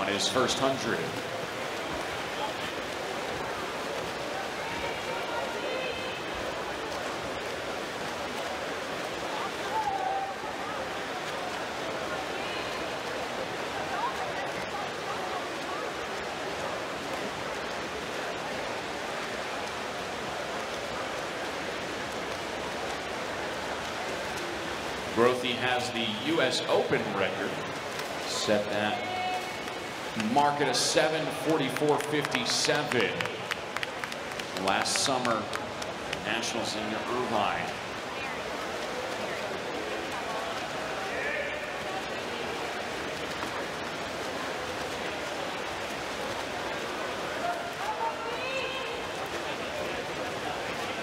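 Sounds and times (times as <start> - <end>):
crowd in hall: 0.0 - 51.0
faint voices: 0.0 - 51.0
swimmers splashing: 0.0 - 51.0.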